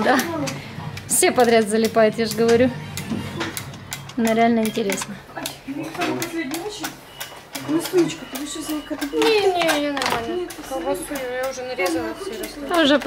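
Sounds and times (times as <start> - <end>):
voices talking: 0.0 - 13.0
child's voice: 9.1 - 12.7.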